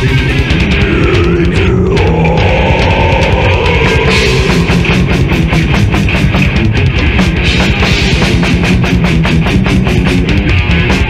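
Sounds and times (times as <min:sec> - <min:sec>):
distorted guitar and bass: 0:00.0 - 0:11.0
metal music: 0:00.0 - 0:11.0
rapid drum kit hits: 0:00.1 - 0:11.0.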